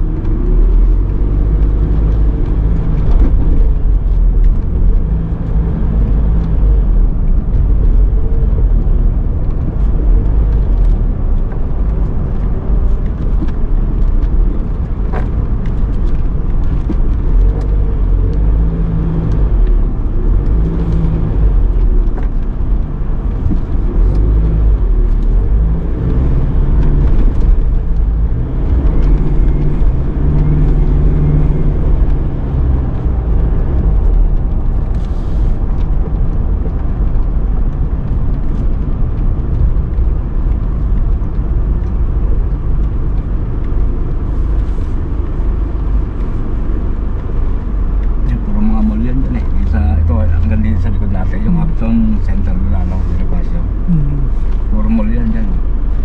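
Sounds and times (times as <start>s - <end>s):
car engine and tyre road noise: 0.0s - 56.0s.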